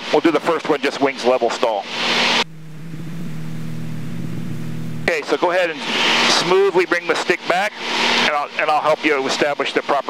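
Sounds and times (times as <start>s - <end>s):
airplane engine and propeller droning: 1.1s - 10.0s.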